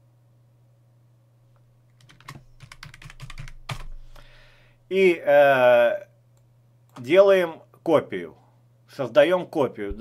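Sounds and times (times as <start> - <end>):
faint steady low hum: 0.0 - 10.0
computer keyboard typing: 2.0 - 4.0.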